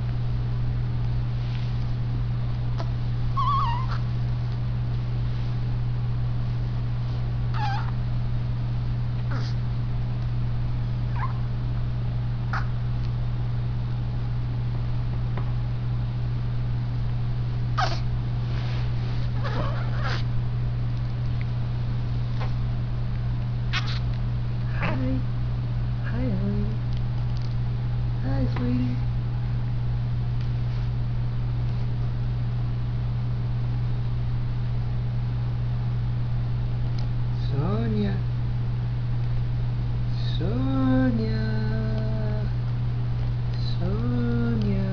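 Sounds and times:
steady low hum: 0.0s - 44.9s
newborn baby whimpering: 2.8s - 4.0s, 7.5s - 7.9s, 9.3s - 9.6s, 12.5s - 12.7s, 17.8s - 18.1s, 19.4s - 20.3s, 23.7s - 24.0s.

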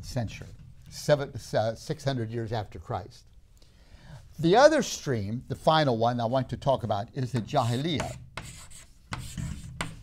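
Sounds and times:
chalk scratching on chalkboard: 7.4s - 10.0s.

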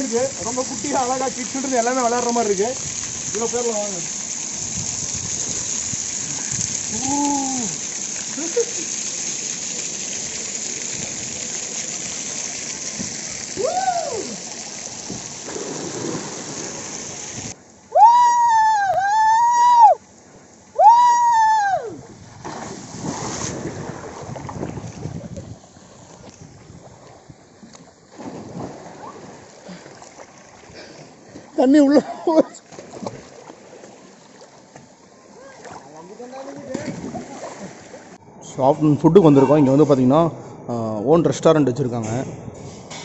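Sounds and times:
splashing in a pool: 0.0s - 17.6s, 22.2s - 38.2s
water spray spattering: 0.0s - 17.6s, 22.4s - 23.9s
man yelling: 6.9s - 7.8s, 13.6s - 14.4s, 20.8s - 22.0s, 39.2s - 39.9s.

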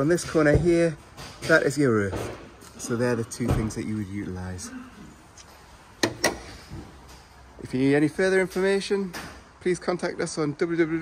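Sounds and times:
vehicle bonnet banging shut: 6.0s - 6.8s.

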